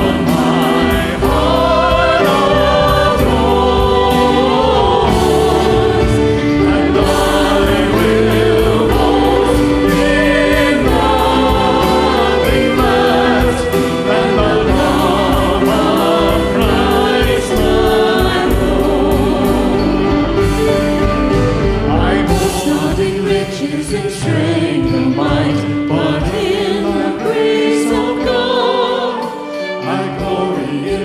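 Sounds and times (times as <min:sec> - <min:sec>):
praise band singing a hymn: 0:00.0 - 0:31.0.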